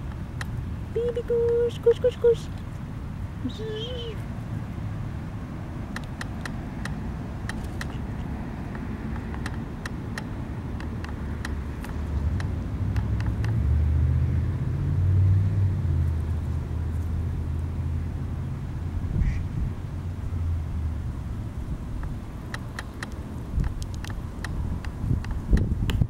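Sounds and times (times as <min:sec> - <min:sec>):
passing vehicle engine drone: 0:00.0 - 0:25.5
goose grazing clicks and plucks: 0:05.9 - 0:13.6, 0:22.0 - 0:26.0.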